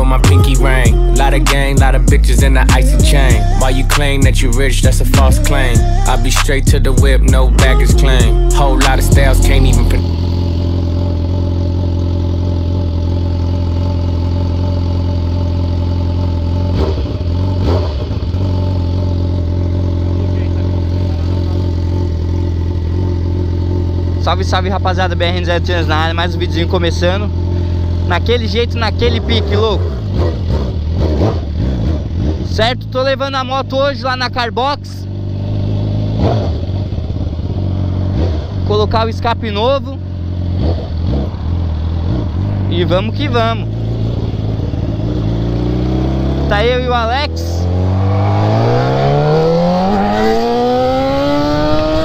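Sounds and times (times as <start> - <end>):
motorcycle engine idling: 0.0 - 51.4.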